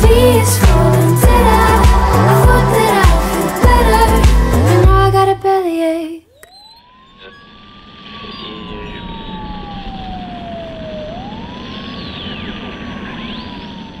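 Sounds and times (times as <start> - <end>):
song: 0.0 - 5.9
siren wailing: 6.3 - 14.0.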